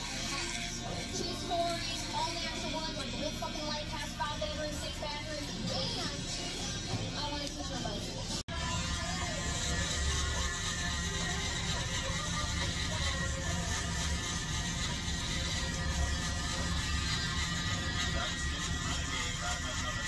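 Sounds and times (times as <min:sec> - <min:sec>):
electric hair trimmer buzzing: 0:00.0 - 0:20.0.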